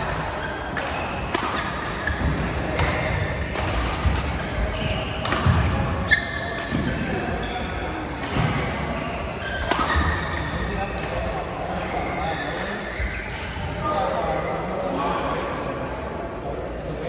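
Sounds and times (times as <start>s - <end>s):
rackets striking shuttlecocks: 0.0s - 8.8s, 9.4s - 10.4s
players' voices: 0.0s - 17.0s
court shoes squeaking on floor: 0.1s - 13.9s.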